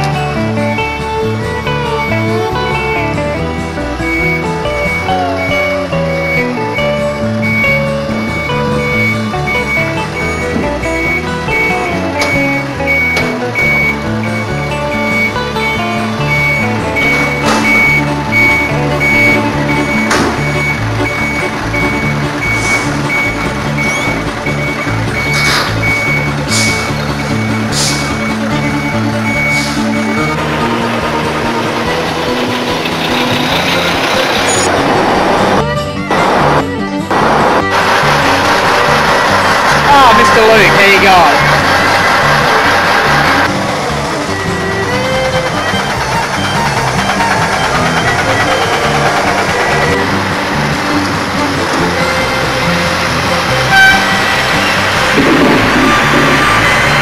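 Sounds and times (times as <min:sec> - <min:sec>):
background music: 0:00.0 - 0:57.0
truck reversing beeper: 0:00.0 - 0:57.0.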